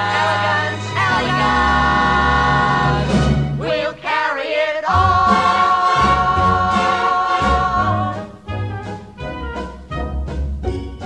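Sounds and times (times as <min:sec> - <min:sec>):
vocal ensemble singing in harmony: 0:00.0 - 0:08.6.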